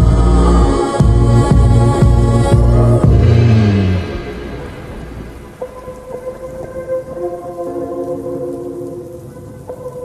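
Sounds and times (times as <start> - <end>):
soft sustained music notes: 0.0 - 10.0
thunder: 3.0 - 6.8
rain: 3.0 - 10.0.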